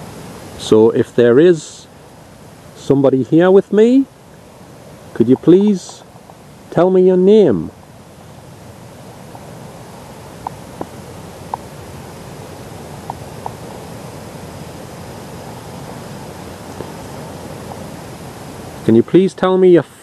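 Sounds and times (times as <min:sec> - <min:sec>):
low outdoor background hiss: 0:00.0 - 0:20.0
man's voice: 0:05.2 - 0:06.0, 0:06.7 - 0:07.7, 0:18.9 - 0:20.0.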